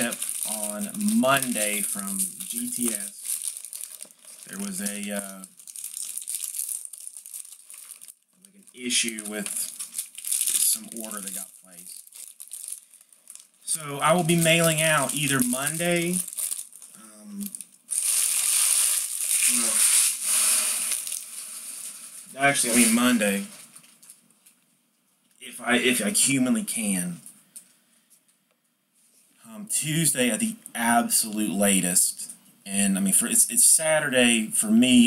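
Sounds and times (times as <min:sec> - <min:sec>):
foil wrappers crinkling and tearing: 0:00.0 - 0:08.2, 0:08.9 - 0:24.2.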